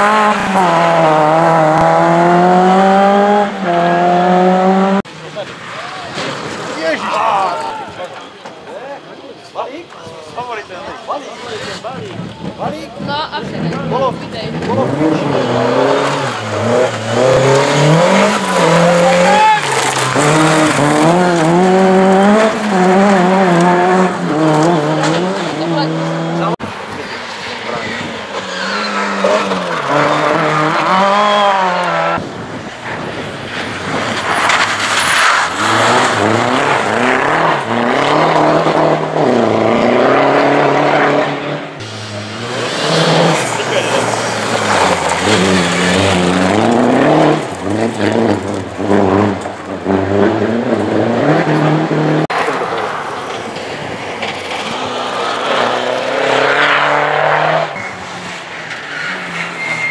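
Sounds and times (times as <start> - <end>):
rally car engine revving: 0.0 - 8.2, 11.3 - 59.9
tyre and gravel noise: 14.1 - 25.6, 26.6 - 38.6, 41.8 - 50.2, 52.3 - 56.8.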